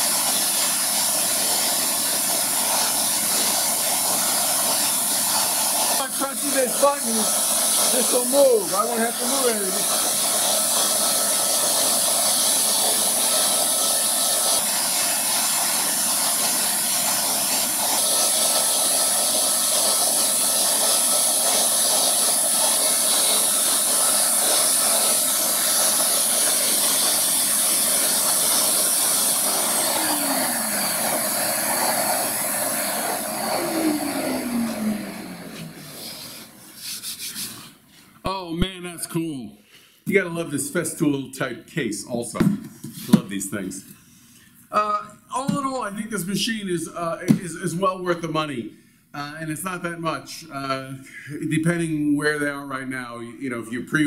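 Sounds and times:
router high-pitched whine: 5.1 - 36.6.

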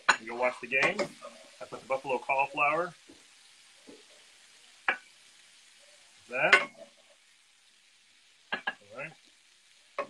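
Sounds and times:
food sizzling in a skillet: 0.0 - 10.0.

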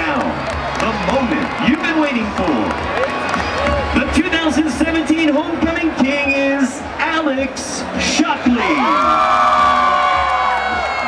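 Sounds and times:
crowd cheering and applause: 0.0 - 11.0.

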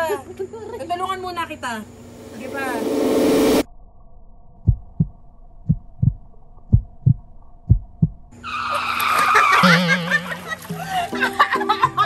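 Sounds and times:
muffled low double thumps: 4.6 - 8.3
music: 10.4 - 12.0.

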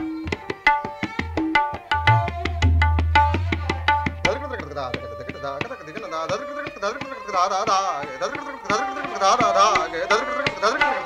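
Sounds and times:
tabla strokes: 0.0 - 11.0.

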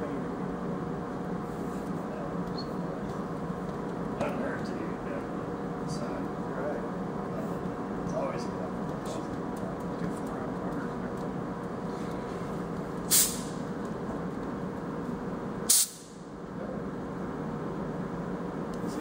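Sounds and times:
steady shop hum: 0.0 - 19.0
compressed air hisses: 13.1 - 13.6, 15.7 - 16.1.

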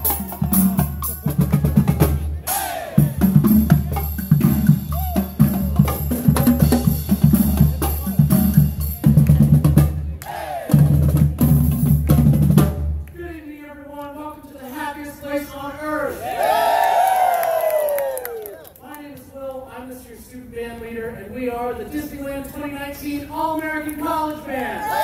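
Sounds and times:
drumline drums: 0.0 - 13.1
marching band playing: 0.0 - 13.1.

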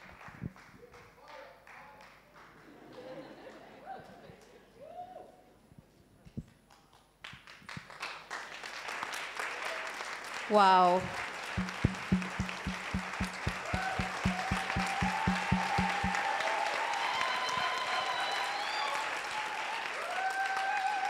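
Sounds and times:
steady beat: 11.0 - 16.2
audience applauding: 11.6 - 21.0.

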